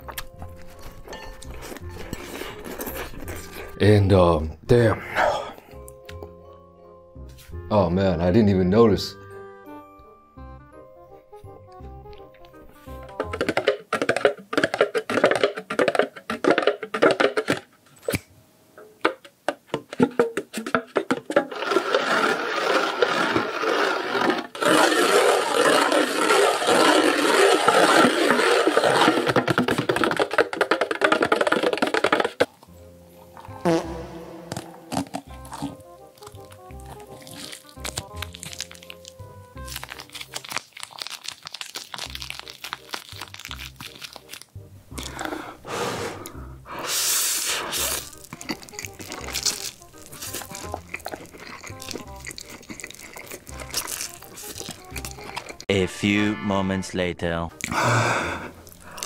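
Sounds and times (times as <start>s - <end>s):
music: 0.0s - 17.3s, 24.3s - 59.0s
fingers tapping on container lids: 12.2s - 17.7s, 18.8s - 21.5s, 29.2s - 32.6s.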